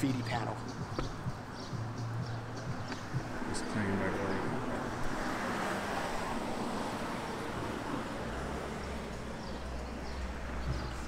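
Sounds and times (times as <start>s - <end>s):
vehicle going by: 2.0s - 11.0s.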